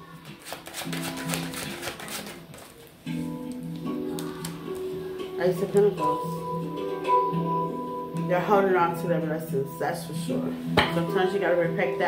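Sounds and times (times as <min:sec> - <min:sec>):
background music with sustained notes: 0:00.0 - 0:12.0
cards being shuffled: 0:00.2 - 0:04.9.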